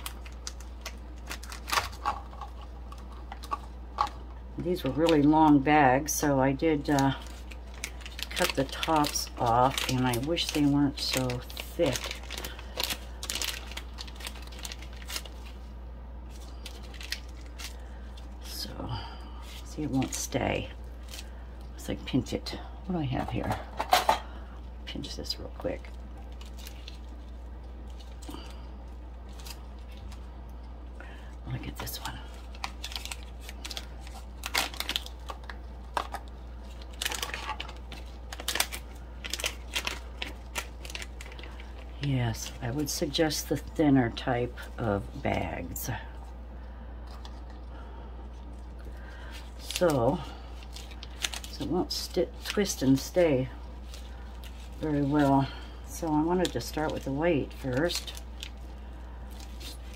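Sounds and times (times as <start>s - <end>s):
plastic bag crinkling: 0.0s - 46.4s, 47.0s - 59.9s
steady low hum: 0.0s - 59.9s.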